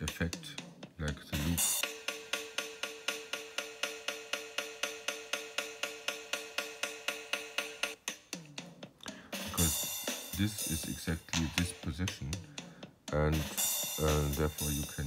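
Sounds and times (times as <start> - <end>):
stuttering glitched drum loop: 0.0 - 1.9, 9.4 - 12.5, 13.1 - 15.0.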